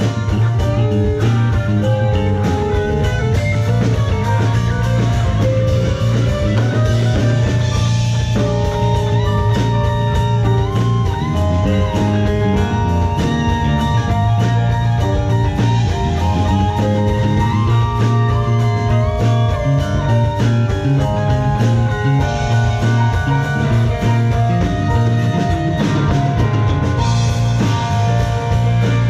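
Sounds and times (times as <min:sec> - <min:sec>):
blues rock band: 0:00.0 - 0:29.0
lead guitar bending notes: 0:00.0 - 0:29.0.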